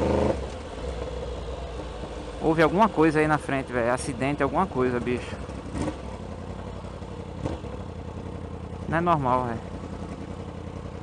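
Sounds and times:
motorcycle engine: 0:00.0 - 0:11.0
road and wind noise: 0:00.0 - 0:11.0.

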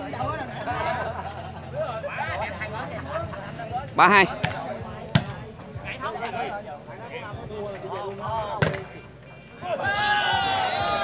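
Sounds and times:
spectators chatting: 0:00.0 - 0:11.0
volleyball being hit: 0:04.4 - 0:05.4, 0:08.6 - 0:09.0.

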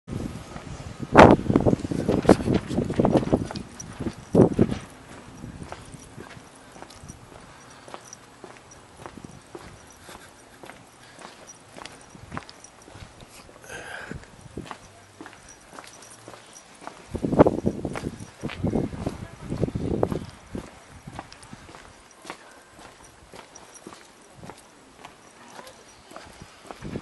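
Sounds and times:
footsteps on pavement: 0:00.5 - 0:27.0.

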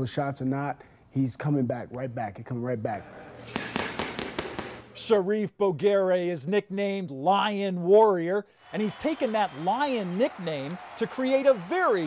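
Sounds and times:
gloves smacking punching bag: 0:03.5 - 0:04.8.

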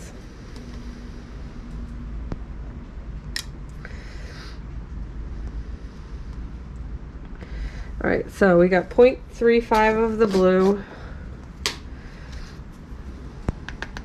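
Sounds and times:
low wind rumble: 0:00.0 - 0:14.0.

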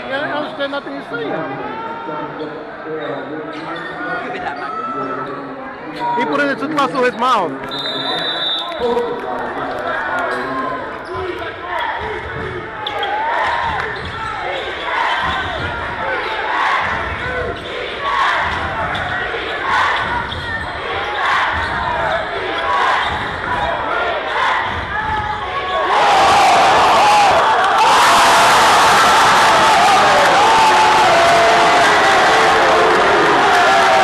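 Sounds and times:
crowd talking and shouting: 0:00.0 - 0:34.0.

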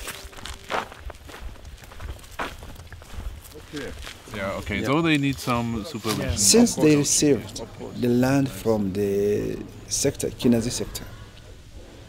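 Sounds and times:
footsteps on dirt path: 0:00.0 - 0:06.6
steady low rumble: 0:06.5 - 0:12.0.

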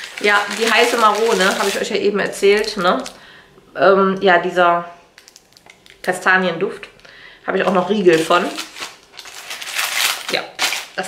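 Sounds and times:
plastic bags crinkling: 0:00.0 - 0:03.2, 0:05.2 - 0:06.2, 0:07.0 - 0:11.0.

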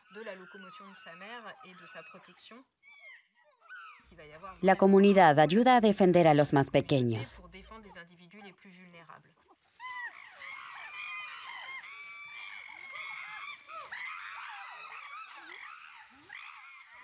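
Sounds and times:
chimpanzees screaming: 0:00.0 - 0:04.2, 0:09.7 - 0:17.0.

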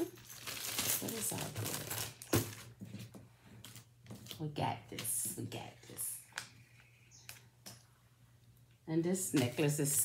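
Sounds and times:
plastic bag rustling: 0:00.0 - 0:04.3.

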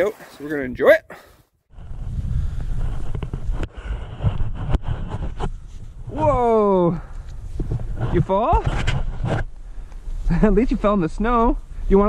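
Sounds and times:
wind buffeting microphone: 0:01.7 - 0:12.0.

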